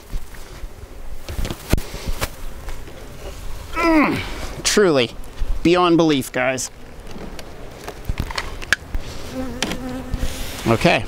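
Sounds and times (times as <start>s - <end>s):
honey bees buzzing: 0.0s - 11.0s
wooden hive boxes clicking: 5.2s - 10.2s.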